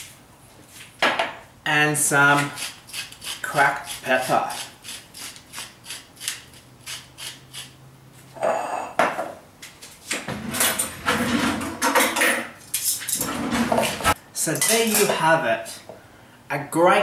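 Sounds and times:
pepper mill grinding: 2.4s - 7.7s
scrape: 8.4s - 9.0s.

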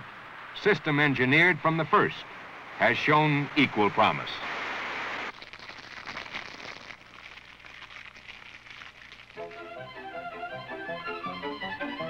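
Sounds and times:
faint crackle: 1.4s - 10.4s.

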